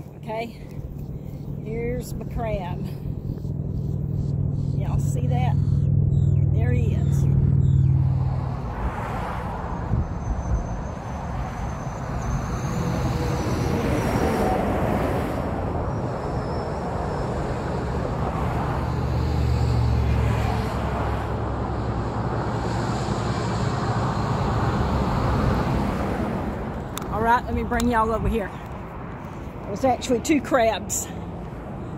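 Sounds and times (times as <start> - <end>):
deep traffic rumble: 0.0 - 31.9
passing cars hum: 0.0 - 31.9.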